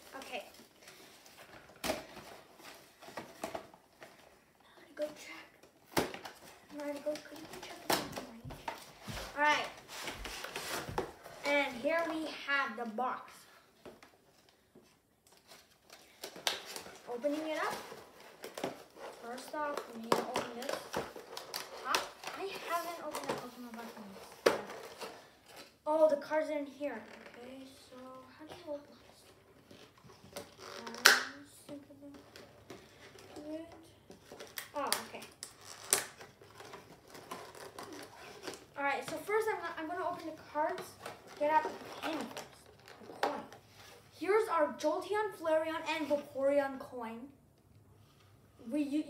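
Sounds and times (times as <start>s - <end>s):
plastic packaging clicks and crinkles: 5.0s - 11.1s, 13.8s - 25.8s, 29.5s - 43.9s.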